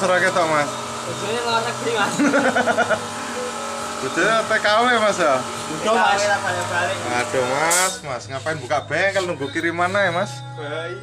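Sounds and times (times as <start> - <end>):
steady mechanical hum: 0.0 - 11.0
man laughing: 2.0 - 3.5.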